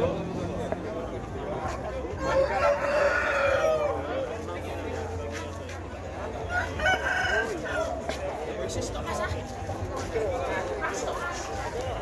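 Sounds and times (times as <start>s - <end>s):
rooster crowing: 2.2s - 4.0s.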